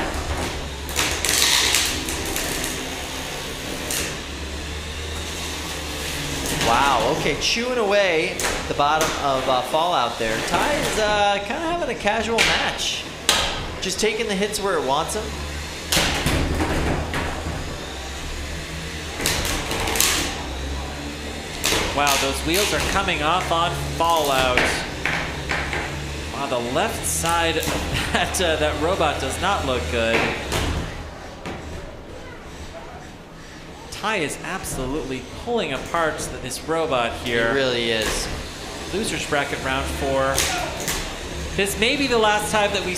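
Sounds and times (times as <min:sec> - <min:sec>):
steady low hum: 0:00.0 - 0:42.9.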